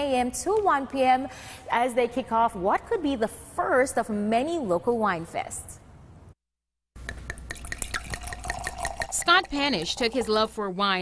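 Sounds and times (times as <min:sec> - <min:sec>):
wine pouring into a glass: 0:07.5 - 0:10.4.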